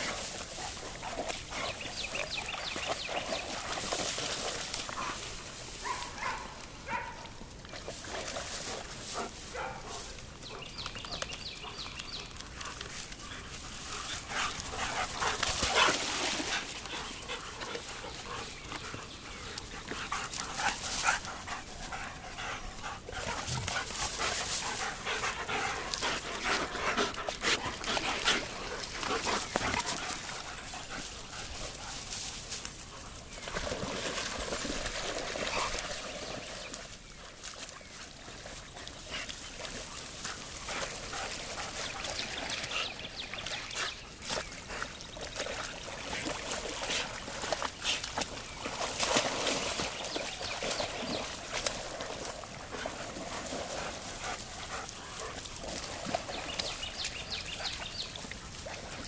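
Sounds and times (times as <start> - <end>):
dogs barking: 5.8 - 7.4, 9.5 - 10.7.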